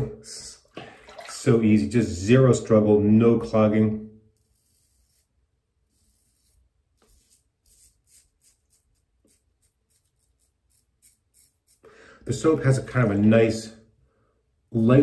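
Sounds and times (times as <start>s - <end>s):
razor scraping stubble: 4.3s - 11.9s.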